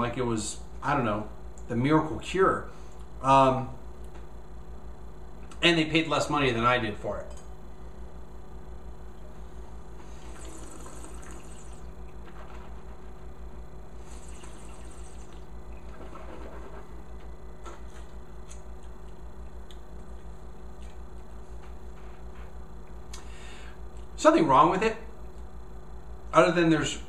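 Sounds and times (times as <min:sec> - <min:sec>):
electrical hum: 0:00.0 - 0:27.0
wine slurping: 0:10.2 - 0:11.9, 0:14.0 - 0:15.5.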